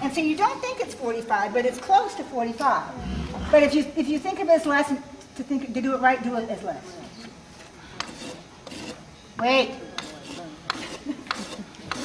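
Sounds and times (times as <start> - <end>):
faint voices murmuring: 6.6 - 12.0.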